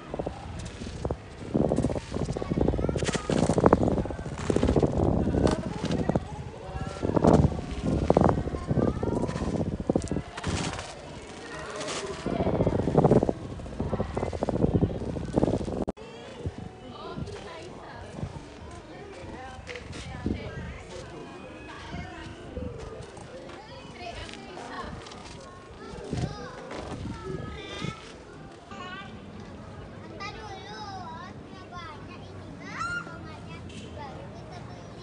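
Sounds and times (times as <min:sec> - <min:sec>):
crowd chatter: 0:00.0 - 0:35.0
people talking and calling: 0:00.0 - 0:35.0
footsteps on stone paving: 0:20.9 - 0:27.1.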